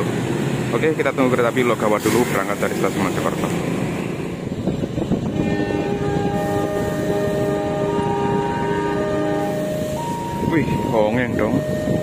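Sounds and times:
locomotive air horn blast: 5.2 - 12.0.

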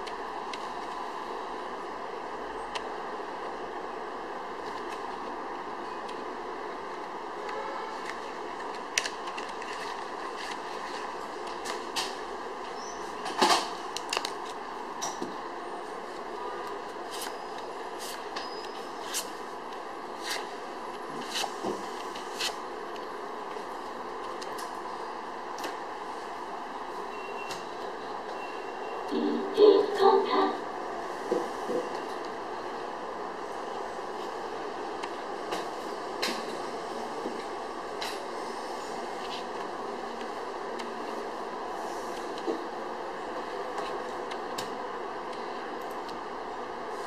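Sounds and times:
steady background noise: 0.0 - 47.0
faint high beeps: 27.1 - 27.6, 28.3 - 29.5.

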